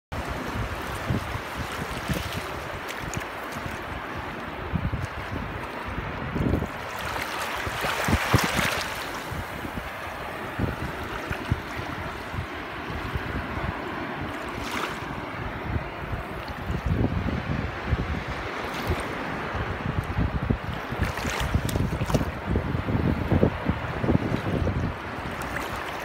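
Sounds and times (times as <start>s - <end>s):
water splashes: 0.1s - 17.1s, 18.2s - 22.6s, 23.6s - 26.0s
wind gusting on microphone: 0.1s - 26.0s
waves lapping on pebbles: 0.2s - 15.3s, 20.7s - 22.4s, 25.0s - 26.0s.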